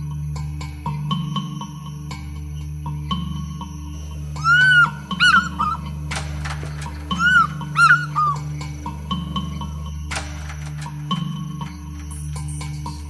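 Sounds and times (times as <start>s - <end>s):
background music with low drone: 0.0s - 13.0s
fish eagle calling: 4.2s - 8.9s.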